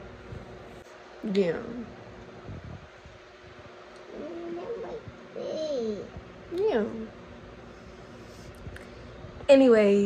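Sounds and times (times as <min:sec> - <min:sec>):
low room noise hiss: 0:00.0 - 0:10.0.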